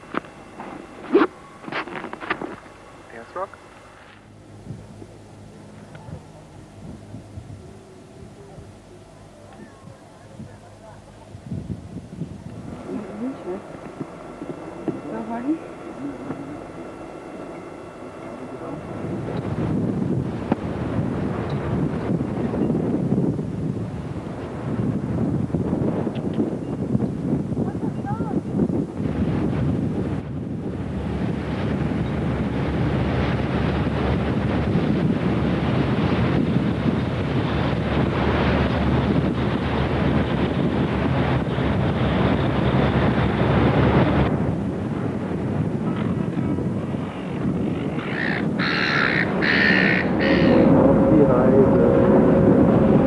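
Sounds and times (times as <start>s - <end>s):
boat under way on water: 3.8s - 53.0s
wind buffeting microphone: 4.3s - 53.0s
bird cawing: 47.9s - 50.7s.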